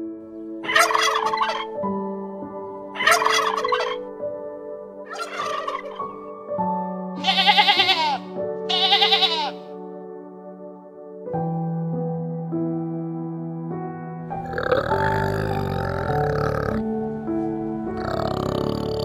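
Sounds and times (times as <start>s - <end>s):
soft background music: 0.0s - 19.0s
turkey gobbling: 0.6s - 1.8s, 3.0s - 4.1s, 5.1s - 6.2s.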